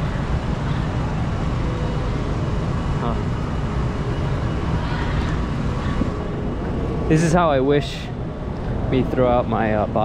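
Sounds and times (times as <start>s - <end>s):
low rumble of traffic: 0.0s - 10.0s.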